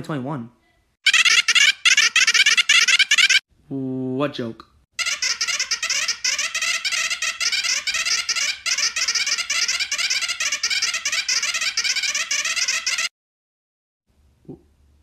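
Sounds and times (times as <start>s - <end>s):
high-pitched cartoon babble: 1.1s - 3.4s, 5.0s - 13.1s.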